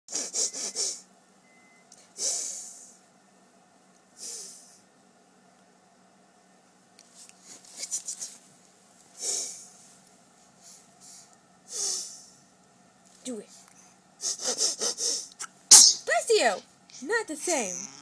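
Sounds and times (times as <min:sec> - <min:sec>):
baby snorting through nose: 0:14.2 - 0:16.0.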